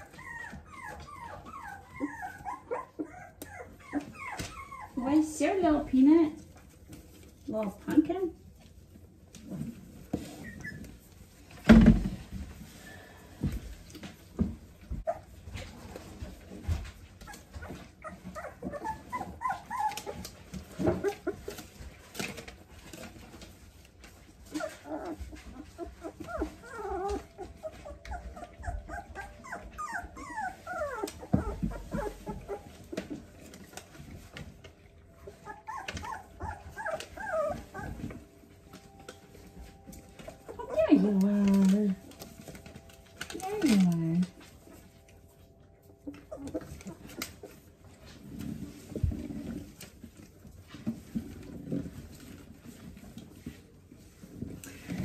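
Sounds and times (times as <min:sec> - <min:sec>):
puppies whimpering and squeaking: 0:00.0 - 0:55.0.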